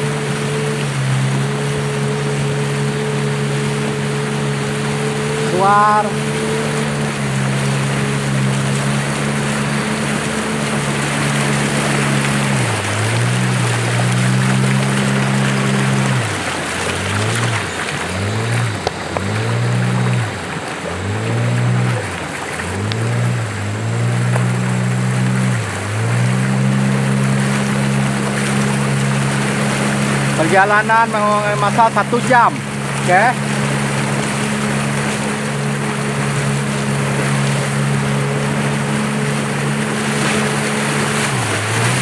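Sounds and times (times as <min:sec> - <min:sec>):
outboard motor running: 0:00.0 - 0:42.0
wake rushing along hull: 0:00.0 - 0:42.0.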